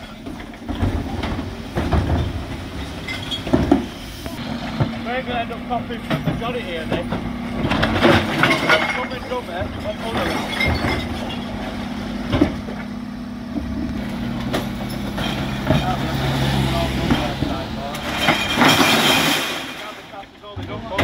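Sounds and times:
rubbish crashing into hopper: 0:00.0 - 0:12.7, 0:14.0 - 0:21.0
bin lift motor hum: 0:00.2 - 0:18.6.

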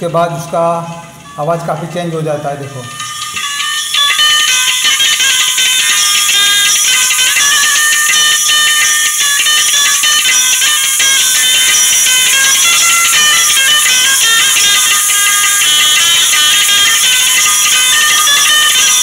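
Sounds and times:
tinny music through tweeters: 0:00.0 - 0:19.0.

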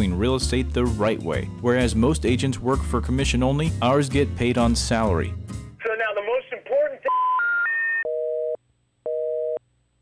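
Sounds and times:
rising telephone beeps: 0:07.1 - 0:09.6.

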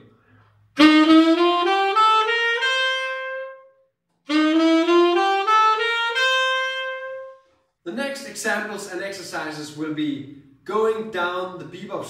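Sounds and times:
tenor saxophone playing a scale: 0:00.7 - 0:07.6.

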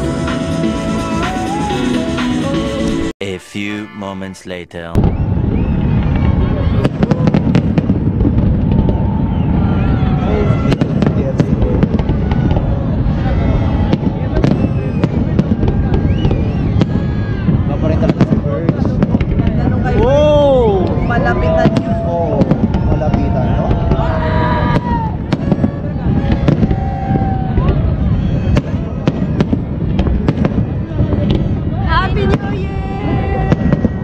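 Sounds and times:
fireworks bangs and crackles: 0:04.9 - 0:34.0
continuous fireworks rumble: 0:05.0 - 0:34.0.

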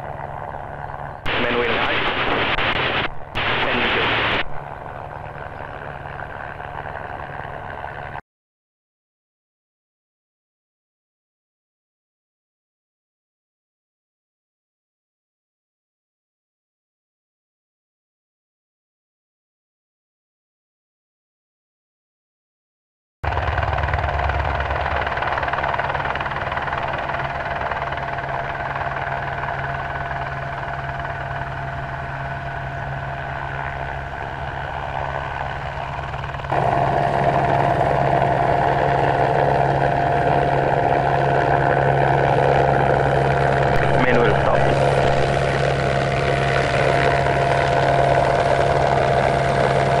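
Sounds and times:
aircraft engine hum and whine: 0:00.0 - 0:08.2, 0:23.3 - 0:50.0.

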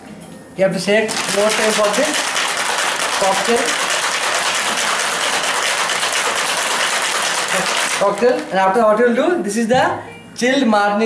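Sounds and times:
ice rattling in cocktail shaker: 0:01.1 - 0:08.6.

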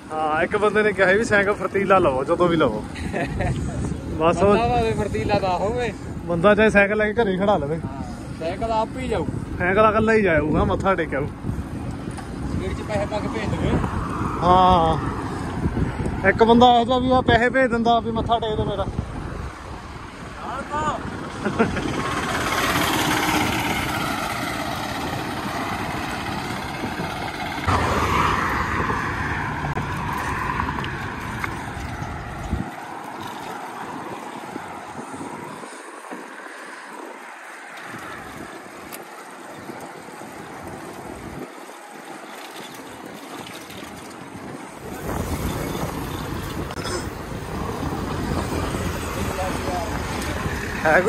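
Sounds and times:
road traffic noise: 0:00.0 - 0:51.0
wind rushing over microphone: 0:00.0 - 0:51.0.

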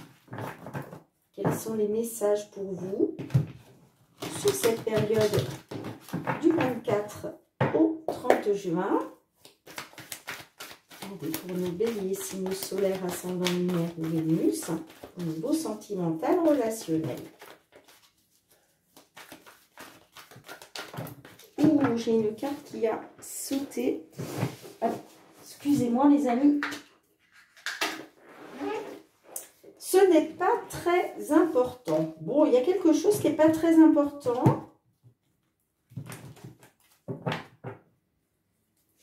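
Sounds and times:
cards being shuffled: 0:09.4 - 0:15.7, 0:16.4 - 0:22.6.

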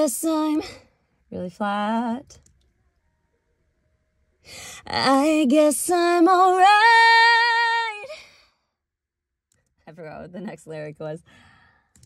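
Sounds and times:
woman singing: 0:00.0 - 0:00.8, 0:04.8 - 0:08.2
woman speaking: 0:09.9 - 0:11.2.

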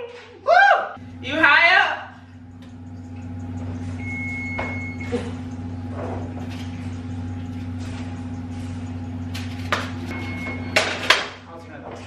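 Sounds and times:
kitchen range humming: 0:00.0 - 0:12.0
short high beep: 0:10.1 - 0:10.8.

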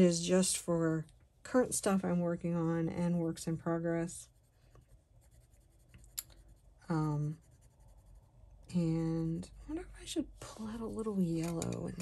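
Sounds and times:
pencil scratching on paper: 0:02.6 - 0:09.2.

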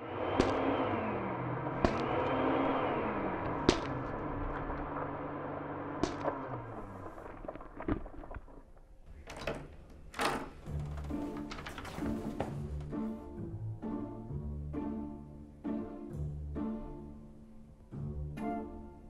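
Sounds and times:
dark film score drone: 0:00.0 - 0:19.0
door opening: 0:09.0 - 0:13.0.

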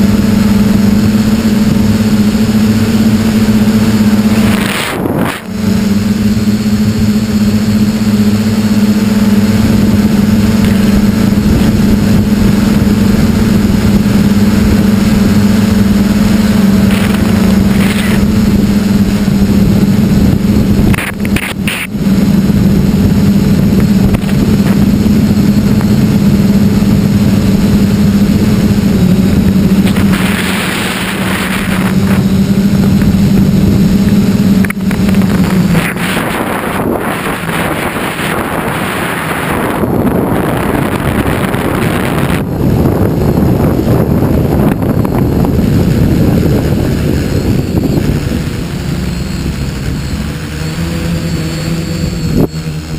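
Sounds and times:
drone motors and propellers humming: 0:00.0 - 0:52.9
wind rushing over microphone: 0:00.0 - 0:52.9.

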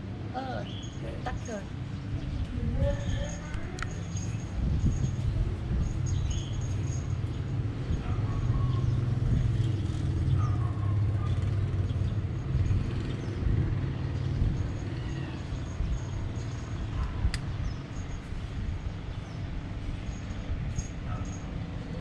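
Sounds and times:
city street traffic rumble: 0:00.0 - 0:22.0.

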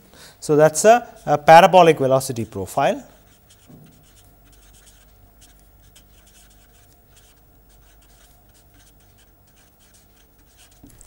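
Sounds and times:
marker pen scratching on paper: 0:01.2 - 0:11.0.

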